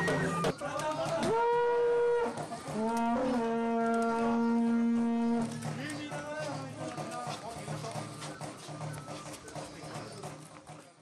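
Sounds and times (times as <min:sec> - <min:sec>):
conch shell trumpet notes: 0:01.3 - 0:05.6.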